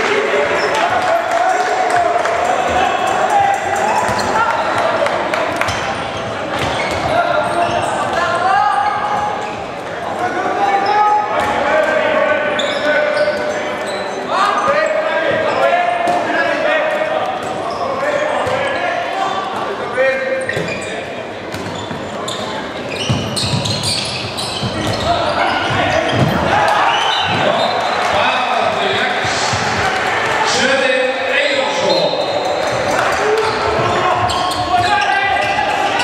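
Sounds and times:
ball bouncing on wooden court: 0:04.0 - 0:04.4, 0:23.0 - 0:26.5
people shouting: 0:25.0 - 0:28.4.

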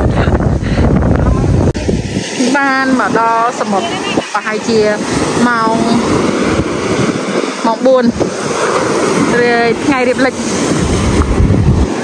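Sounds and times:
low rumble of wind gust: 0:00.0 - 0:12.0
wind buffeting microphone: 0:00.0 - 0:12.0
small waves breaking on sand: 0:00.8 - 0:12.0.

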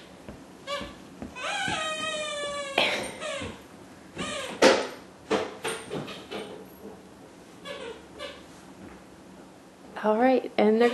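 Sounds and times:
puppy and toddler squeaks and knocks: 0:00.6 - 0:03.6, 0:04.2 - 0:06.7, 0:07.6 - 0:08.5.

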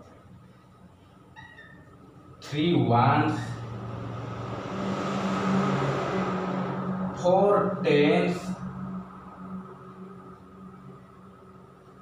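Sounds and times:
low motor hum: 0:00.1 - 0:12.0.

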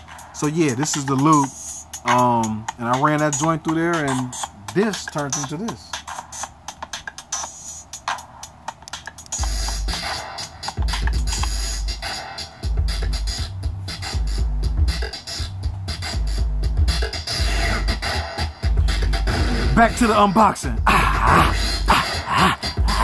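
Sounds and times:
distorted loop with heavy bass: 0:00.0 - 0:23.0
drum machine loop: 0:00.0 - 0:23.0.

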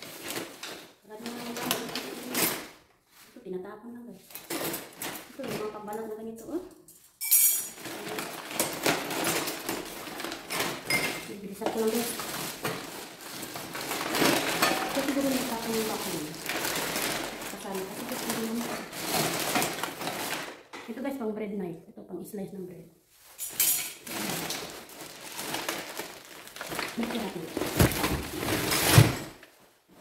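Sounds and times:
plastic bin bag rustling: 0:00.0 - 0:03.4, 0:07.8 - 0:20.7, 0:23.1 - 0:30.0
person talking: 0:01.0 - 0:02.6, 0:03.3 - 0:04.3, 0:05.4 - 0:06.8, 0:11.2 - 0:12.3, 0:14.8 - 0:16.5, 0:17.5 - 0:18.9, 0:20.8 - 0:22.9, 0:26.9 - 0:28.2
kitchen utensils clattering: 0:04.3 - 0:05.8, 0:07.0 - 0:20.8, 0:23.3 - 0:25.6, 0:26.7 - 0:29.4.

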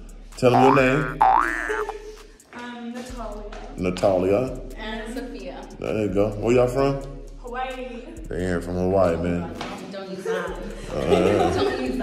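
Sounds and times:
low background music: 0:00.0 - 0:12.0
swooping boing sound effect: 0:00.6 - 0:01.9.

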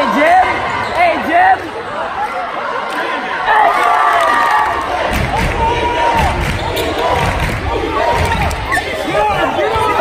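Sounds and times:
crowd voices echoing: 0:00.0 - 0:10.0.

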